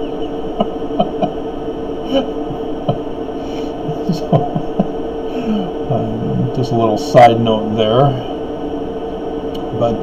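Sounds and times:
steady electrical hum: 0.0 - 10.0
man chuckling quietly: 0.1 - 1.4, 2.0 - 6.6.

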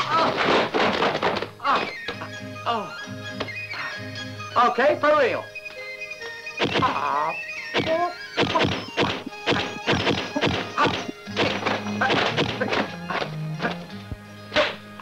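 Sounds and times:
film soundtrack music: 1.1 - 15.0
punch and swish sound effects: 7.8 - 12.8.

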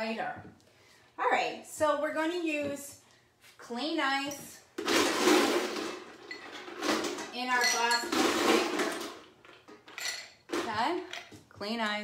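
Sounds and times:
ice cubes clattering into shaker: 4.9 - 10.2.

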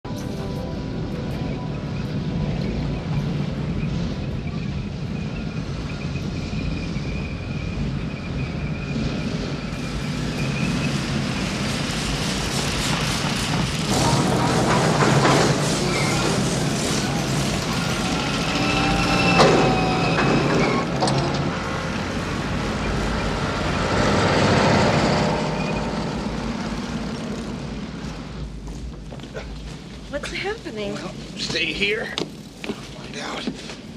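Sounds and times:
thin high engine whine: 0.1 - 28.3
motorcycle and vehicle engines rumbling: 0.8 - 31.7.

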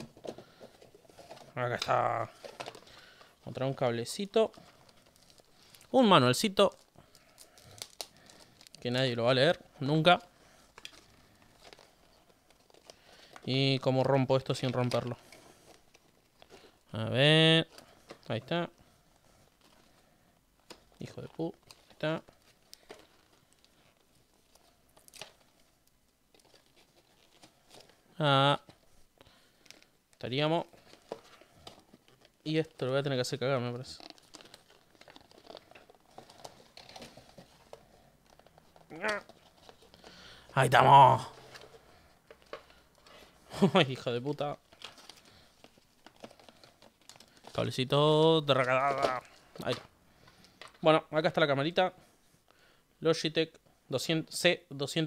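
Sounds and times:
packaging rustling: 0.0 - 50.8
spoken word: 1.6 - 2.4, 38.9 - 39.3, 40.5 - 41.4, 47.6 - 49.8.

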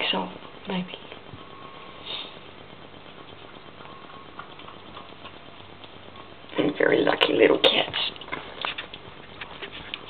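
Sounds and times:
kittens chewing: 0.0 - 10.0
background hiss: 1.4 - 2.6.

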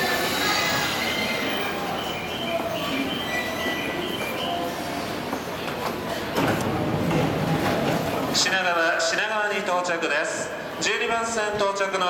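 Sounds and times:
electric train braking: 0.0 - 4.9
high-pitched brake squeals: 0.0 - 4.9.

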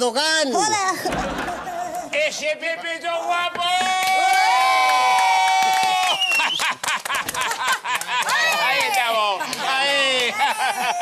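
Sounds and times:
group of adults cheering: 3.7 - 6.6, 8.2 - 11.0.

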